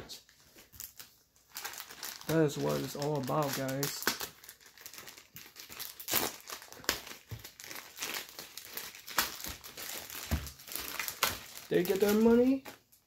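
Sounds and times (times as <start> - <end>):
plastic bag crinkling: 0.4 - 13.0.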